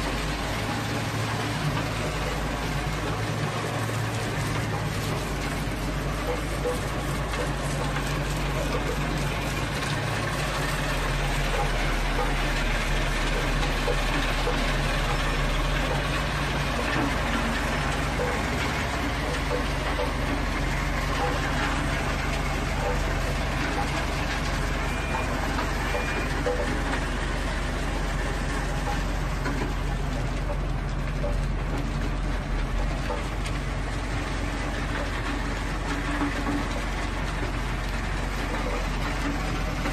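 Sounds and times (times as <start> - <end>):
engine droning: 0.0 - 39.9
gravel pouring off conveyors: 0.0 - 39.9.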